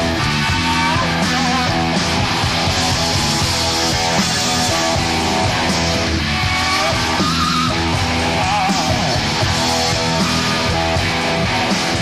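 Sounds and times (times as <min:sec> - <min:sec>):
distorted electric guitar: 0:00.0 - 0:12.0
heavy rock band playing live: 0:00.0 - 0:12.0.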